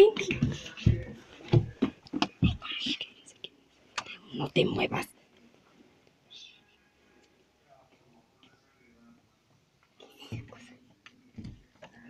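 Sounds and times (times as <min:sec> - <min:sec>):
person whispering: 0:02.4 - 0:05.1, 0:06.3 - 0:06.7.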